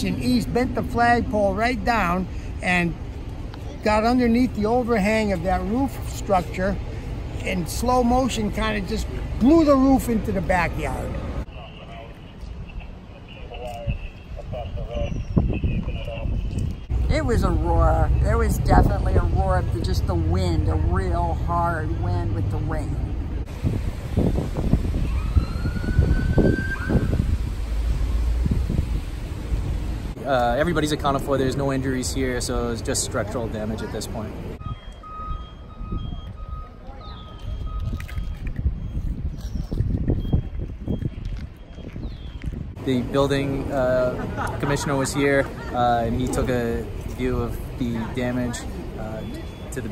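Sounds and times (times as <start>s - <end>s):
distant voices: 0.0s - 39.0s
low outdoor rumble: 0.0s - 49.2s.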